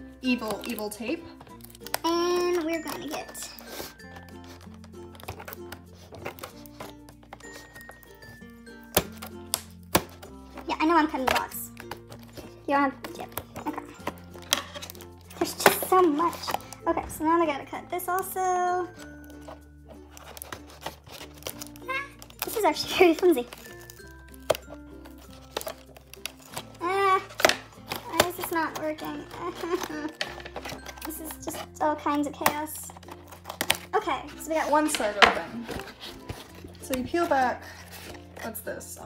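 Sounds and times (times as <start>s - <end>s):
light background music: 0.0s - 39.0s
cardboard crinkling: 0.2s - 38.8s
scissors snipping packing tape: 1.4s - 8.1s, 8.8s - 16.8s, 19.0s - 34.0s.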